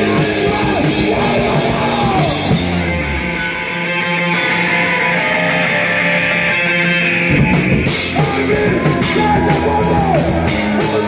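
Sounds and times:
bass notes ringing: 0.0s - 4.9s, 6.4s - 11.0s
distorted electric guitar ringing: 0.0s - 11.0s
punk rock band playing: 0.0s - 11.0s.

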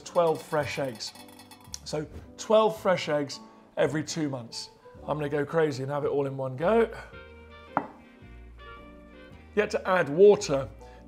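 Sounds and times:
soft background music: 0.0s - 11.0s
glass jar knocking on wooden board: 7.7s - 8.0s.

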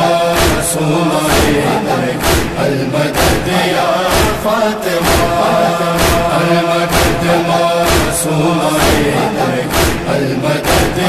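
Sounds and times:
chorus chanting refrain: 0.0s - 11.0s
low beat thump: 1.3s - 8.2s, 8.8s - 10.2s.

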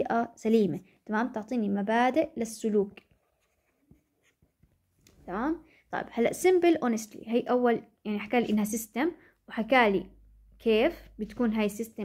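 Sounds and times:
stylus tapping and scratching on screen: 0.4s - 7.3s, 10.6s - 12.0s.

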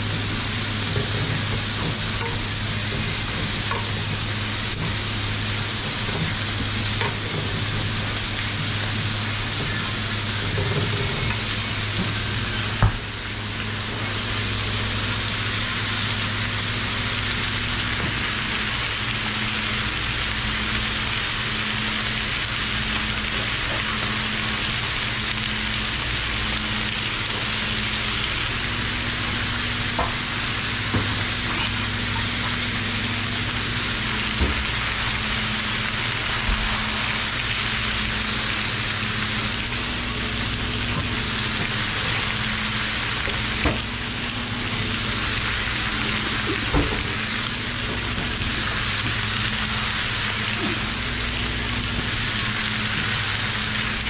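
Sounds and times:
beef sizzling on a griddle: 0.0s - 54.0s.

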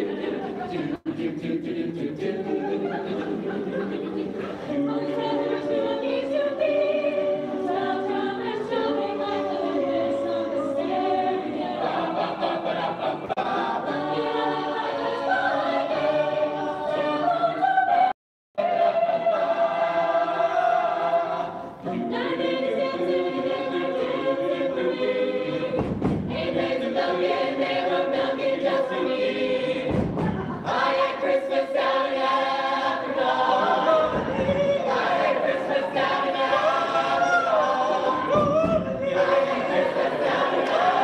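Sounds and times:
a cappella group singing harmony: 0.0s - 41.0s
low thumps: 25.7s - 26.8s, 29.8s - 30.8s, 34.0s - 34.9s, 38.2s - 39.6s.

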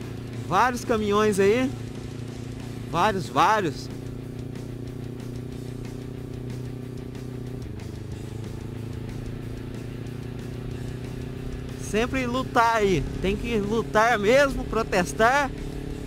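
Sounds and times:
motorcycle engine cruising: 0.0s - 16.0s.

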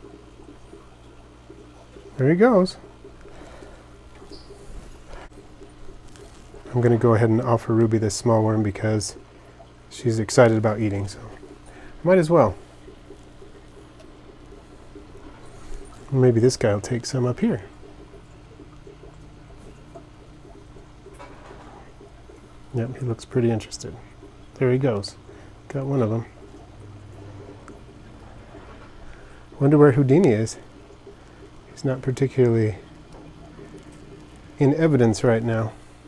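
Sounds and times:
low steady hum: 0.0s - 36.0s.

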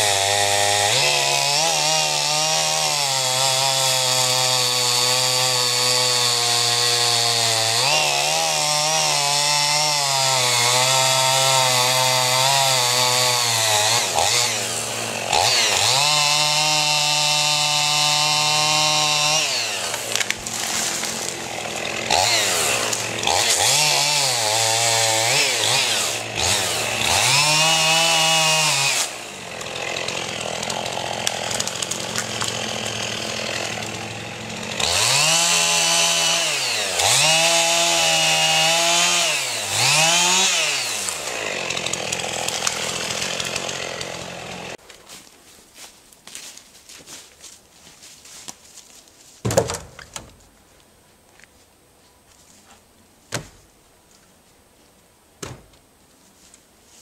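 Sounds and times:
chainsaw cutting wood: 0.0s - 44.9s, 49.4s - 50.3s.

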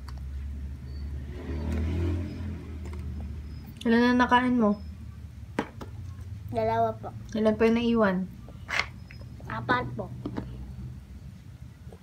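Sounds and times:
vehicle engine passing by: 0.3s - 5.4s.

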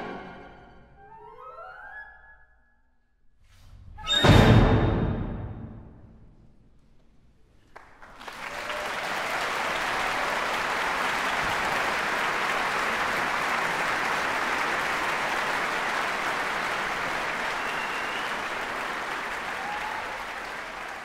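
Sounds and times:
audience applauding: 7.7s - 21.0s.

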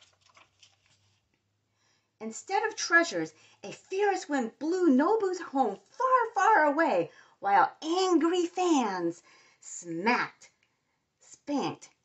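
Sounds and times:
book page turning: 0.0s - 1.4s.

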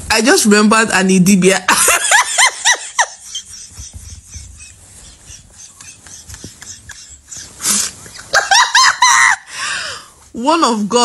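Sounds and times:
woman laughing: 1.7s - 9.5s.

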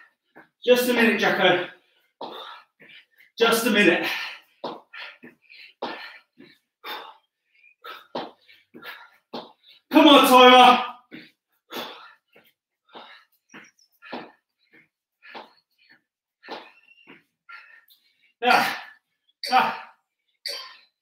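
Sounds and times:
man exhaling and grunting: 18.4s - 20.0s.

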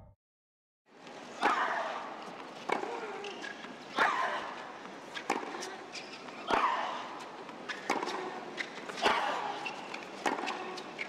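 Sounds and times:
tennis racket hitting ball: 7.8s - 10.9s.

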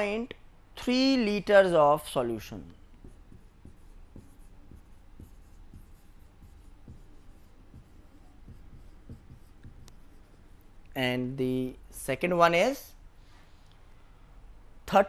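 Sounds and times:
marker scratching on whiteboard: 2.4s - 10.7s.

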